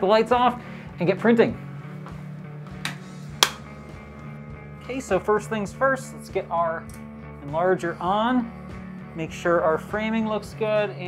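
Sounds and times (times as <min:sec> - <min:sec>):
background music: 0:00.0 - 0:11.0
light switch click: 0:02.8 - 0:03.6.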